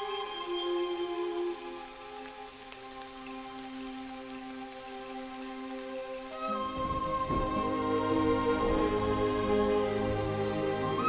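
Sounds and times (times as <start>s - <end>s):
soft film score music: 0.0s - 11.0s
steady rain falling: 0.0s - 11.0s.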